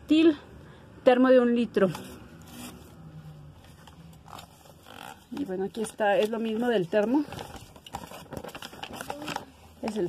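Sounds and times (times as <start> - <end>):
paper rustling: 1.8 - 3.0, 3.6 - 10.0.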